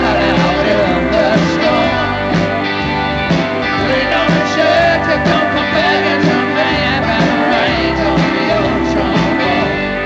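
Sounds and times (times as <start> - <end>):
drum kit: 0.0 - 10.0
electric guitars: 0.0 - 10.0
wavering lead guitar line: 0.0 - 10.0.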